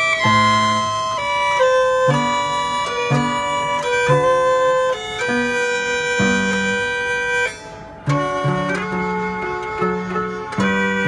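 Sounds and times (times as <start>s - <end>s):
automatic violin and piano tune: 0.0s - 11.0s.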